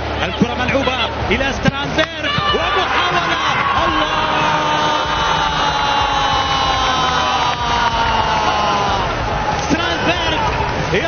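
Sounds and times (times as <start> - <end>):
match broadcast background noise: 0.0 - 11.0
commentator long shout: 0.2 - 11.0.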